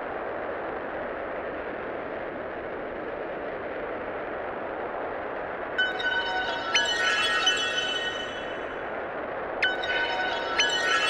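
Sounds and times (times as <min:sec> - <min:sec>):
chiming electronic tones: 0:05.8 - 0:08.8, 0:09.6 - 0:11.0.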